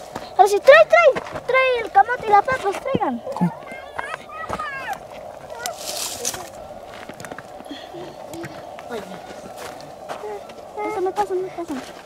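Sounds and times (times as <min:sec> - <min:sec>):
steady hiss: 0:00.0 - 0:12.0
faint indistinct voices: 0:00.2 - 0:12.0.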